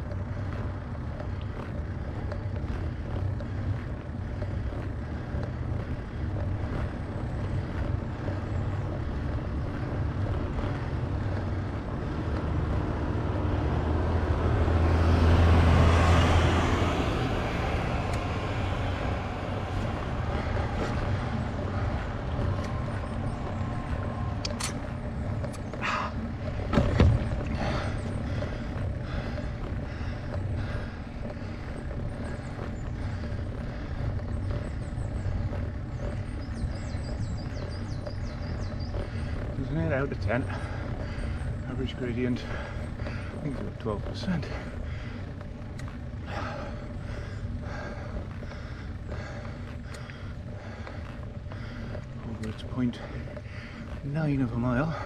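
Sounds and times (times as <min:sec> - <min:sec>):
bicycle riding rumble: 0:00.0 - 0:55.0.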